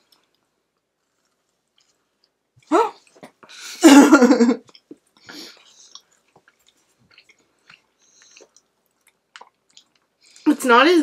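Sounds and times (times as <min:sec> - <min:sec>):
soft chewing of cookie: 0:00.0 - 0:03.6, 0:04.6 - 0:10.5.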